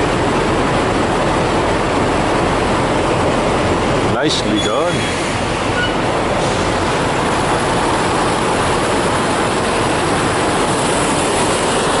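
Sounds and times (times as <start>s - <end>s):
trucks idling: 0.0s - 12.0s.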